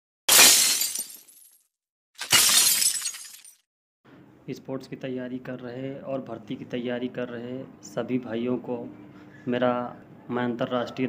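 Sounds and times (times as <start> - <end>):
glass shattering: 0.3 - 1.6, 2.2 - 3.6.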